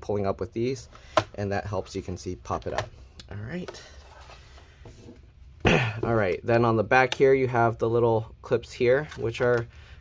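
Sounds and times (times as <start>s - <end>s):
man clearing throat: 5.6s - 6.2s.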